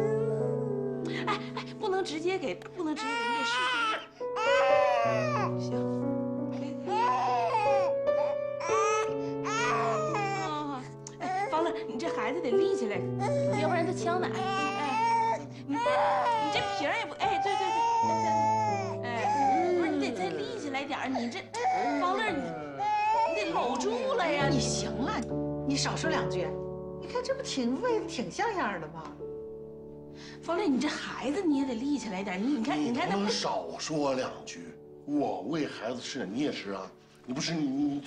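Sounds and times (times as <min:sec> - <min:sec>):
soft background music: 0:00.0 - 0:38.0
baby crying: 0:02.8 - 0:05.7, 0:06.5 - 0:12.1, 0:13.2 - 0:25.1, 0:33.0 - 0:33.6.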